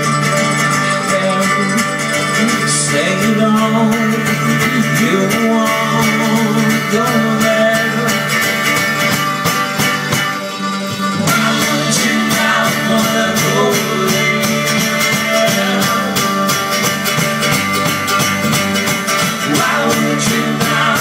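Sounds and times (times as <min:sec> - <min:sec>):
acoustic folk band playing: 0:00.0 - 0:21.0.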